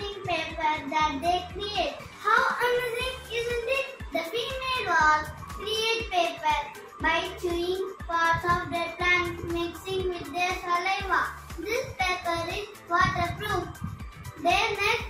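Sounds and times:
boy speaking: 0.0 - 13.8, 14.4 - 15.0
quiet music with bass line: 0.0 - 15.0.

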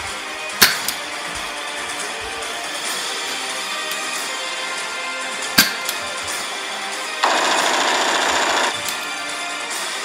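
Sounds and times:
background music: 0.0 - 10.0
rapid machine-gun fire: 7.2 - 8.9.

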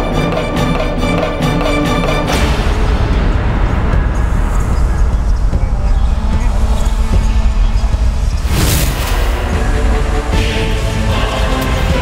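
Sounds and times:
low rumbling drone: 2.3 - 12.0.

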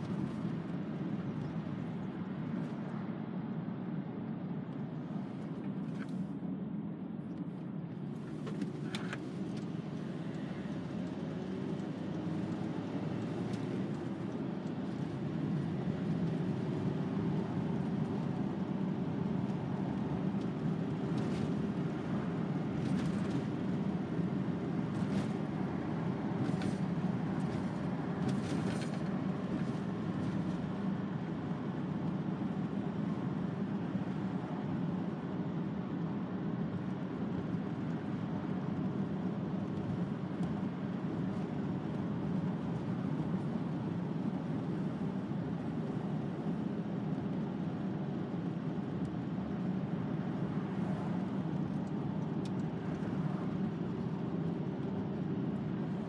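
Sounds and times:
van engine drone: 0.0 - 56.0.

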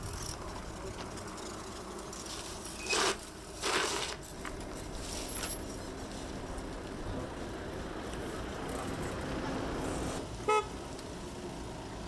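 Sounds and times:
vehicle horn beep: 10.4 - 10.7.

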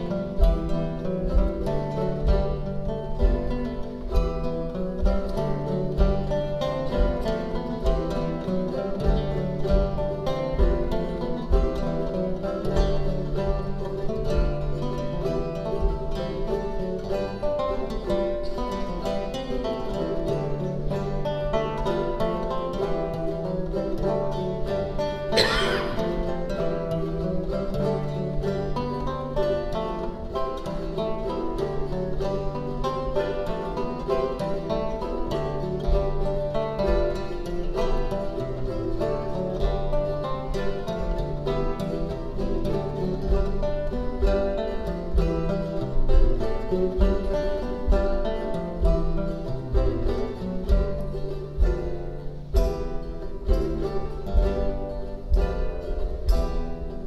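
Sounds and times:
plucked guitar chords and runs: 0.0 - 57.0.

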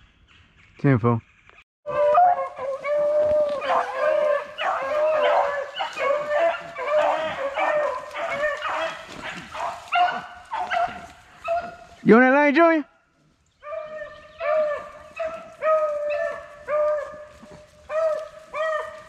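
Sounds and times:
pack of hounds baying: 1.9 - 12.2, 13.6 - 19.0.

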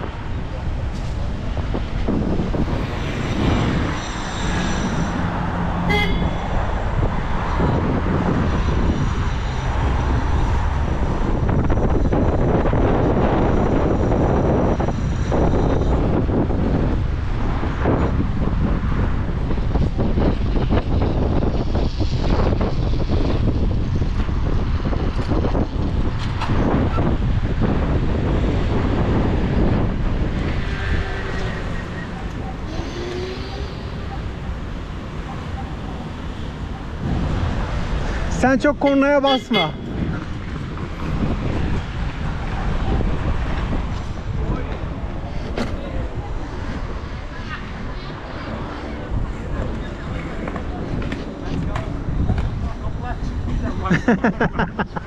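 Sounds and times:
wind rush on microphone: 0.0 - 55.0.

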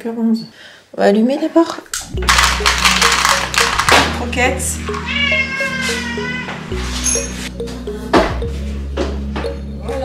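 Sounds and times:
cat meowing: 5.0 - 6.7.

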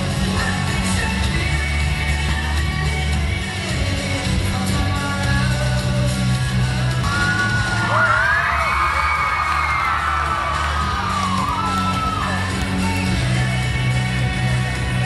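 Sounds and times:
music over sound system: 0.0 - 15.0
steady bass line: 0.0 - 15.0.

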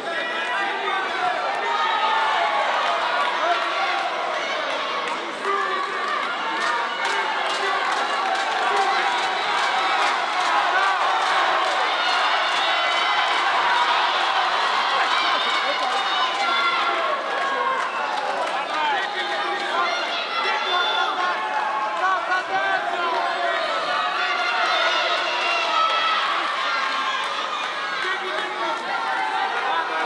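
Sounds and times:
crowd cheering: 0.0 - 30.0
crowd shouting: 0.0 - 30.0.

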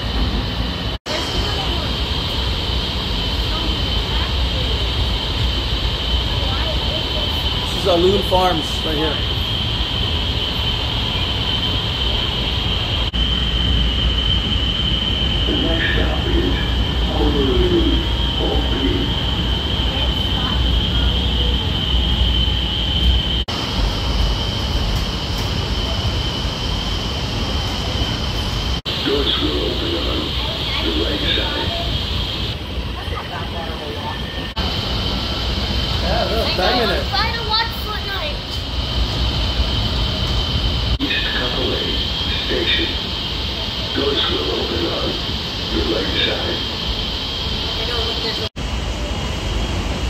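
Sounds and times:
constant high whine: 0.0 - 50.0
light-rail car low rumble: 0.0 - 50.0.

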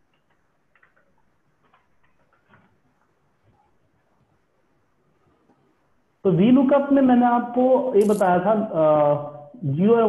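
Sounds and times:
faint keyboard keystrokes: 0.0 - 3.7.

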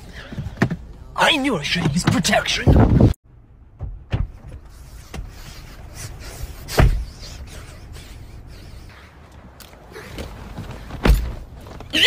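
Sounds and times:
thumps inside a car: 3.8 - 5.4, 6.7 - 7.2, 10.2 - 11.9.

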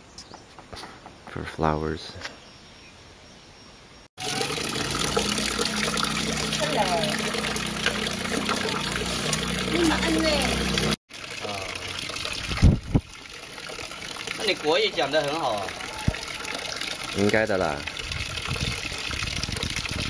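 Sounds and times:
water pouring onto concrete: 4.2 - 20.0.

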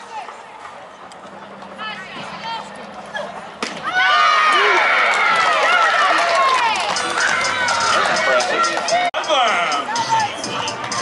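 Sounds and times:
high voices shouting and cheering: 1.8 - 11.0.

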